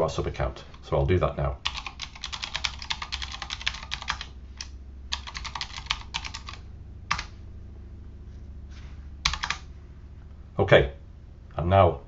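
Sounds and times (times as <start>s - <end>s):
low steady hum: 0.0s - 12.0s
fast typing on keyboard: 1.6s - 7.4s, 9.3s - 9.6s.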